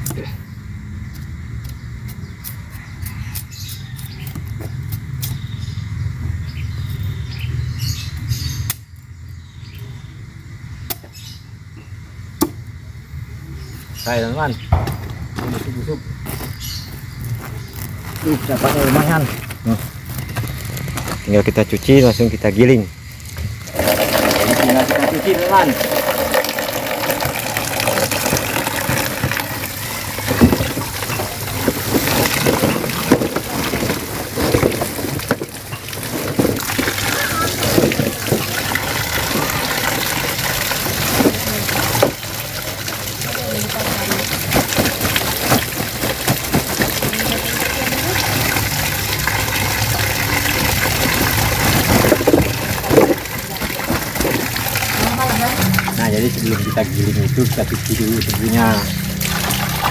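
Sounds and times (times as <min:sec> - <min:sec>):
water splashing into a basin: 0:23.1 - 0:59.9.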